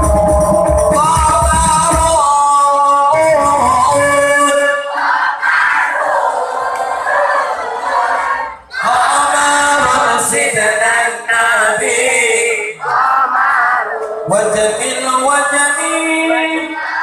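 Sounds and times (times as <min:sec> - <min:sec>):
person singing into a microphone: 0:00.0 - 0:04.9, 0:08.8 - 0:17.0
group of voices singing: 0:03.1 - 0:17.0.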